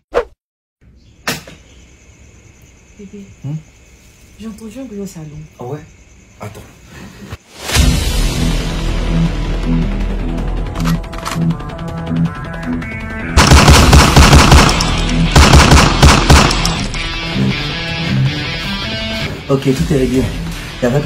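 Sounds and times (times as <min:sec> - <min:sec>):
automatic rifle fire: 0:13.4 - 0:17.0.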